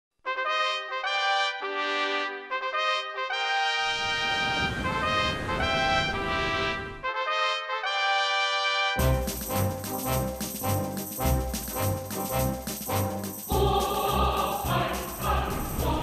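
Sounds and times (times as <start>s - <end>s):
orchestral brass fanfare: 0.3s - 16.0s.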